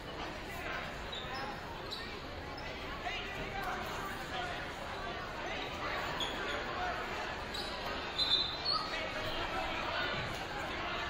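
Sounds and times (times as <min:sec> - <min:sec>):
crowd chatter: 0:00.0 - 0:11.0
short high squeaks: 0:07.5 - 0:09.0.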